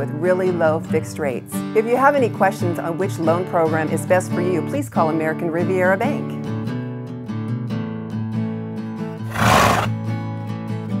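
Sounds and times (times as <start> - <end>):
horse whinny sound effect: 9.3 - 9.9.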